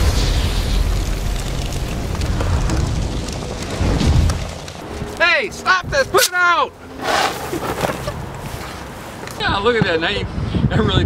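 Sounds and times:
straw burning with rumbling: 0.0 - 11.0.

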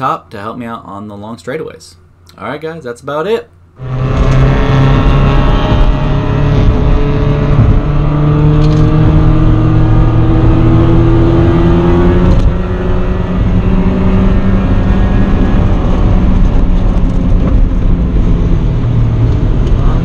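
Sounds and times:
car engine accelerating: 3.8 - 20.0.

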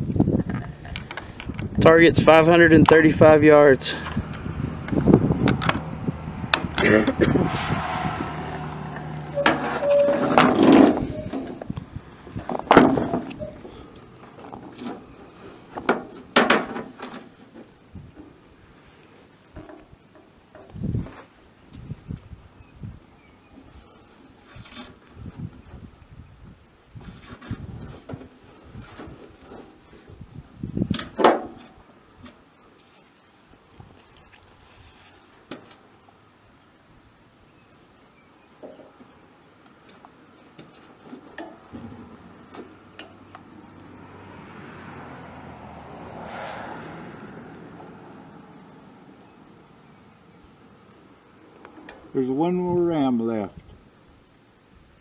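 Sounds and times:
handling knocks and clicks: 12.4 - 18.4.

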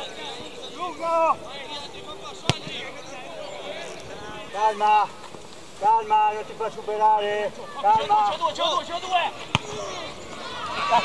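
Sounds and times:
football kick thud: 2.4 - 2.9, 9.4 - 10.0.

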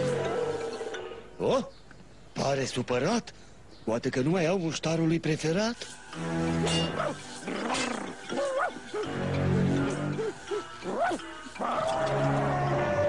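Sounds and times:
background music with held notes: 0.0 - 1.6, 4.9 - 13.0
cartoon dog whimpering: 7.5 - 13.0.

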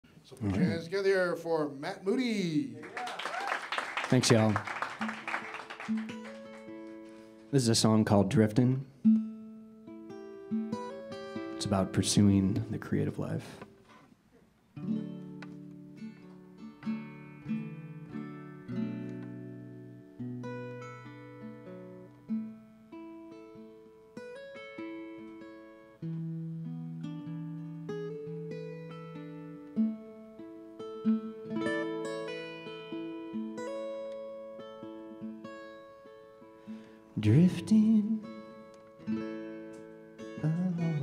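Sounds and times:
solo acoustic guitar: 4.8 - 41.0.

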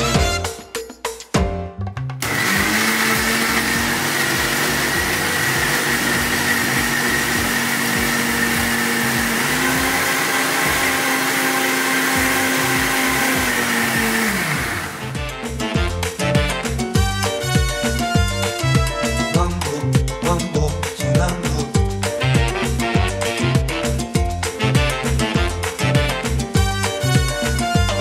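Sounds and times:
mixer grinder motor blending: 2.2 - 19.0.

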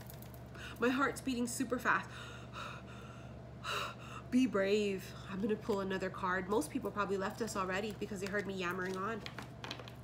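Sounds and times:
woman breathing: 2.1 - 4.3.

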